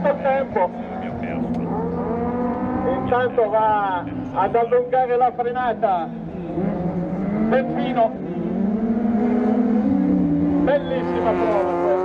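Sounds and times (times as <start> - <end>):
car accelerating: 0.0 - 12.0
race car engines running: 0.0 - 12.0.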